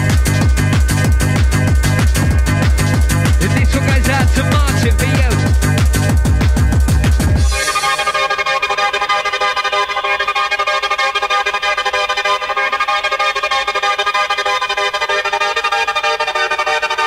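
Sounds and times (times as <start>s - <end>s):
fast ticking pattern: 0.0s - 7.7s.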